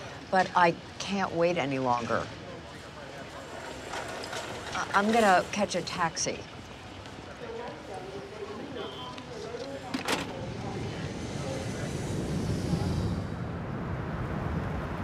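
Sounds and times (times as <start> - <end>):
murmured voices: 0.0 - 13.5
traffic rumble: 0.0 - 15.0.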